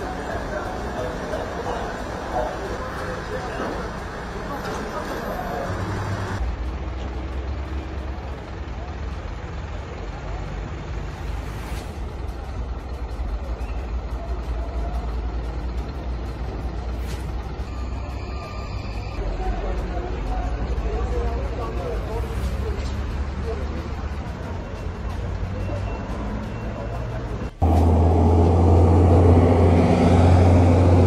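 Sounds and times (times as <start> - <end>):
people's voices: 0.0 - 6.4, 7.8 - 31.0
traffic rumble: 0.0 - 31.0.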